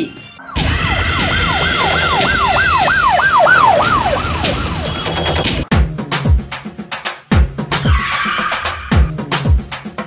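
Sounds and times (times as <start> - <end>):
police siren wailing: 0.4 - 5.7.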